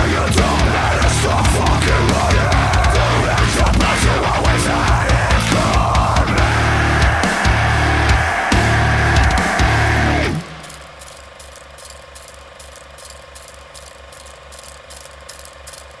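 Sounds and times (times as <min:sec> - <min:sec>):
heavy metal band: 0:00.0 - 0:11.2
mechanical ticking: 0:10.3 - 0:16.0.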